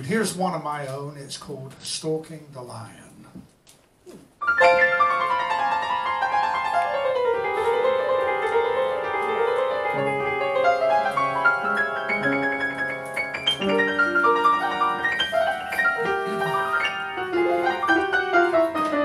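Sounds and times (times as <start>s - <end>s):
slow upright piano tune: 4.4s - 19.0s.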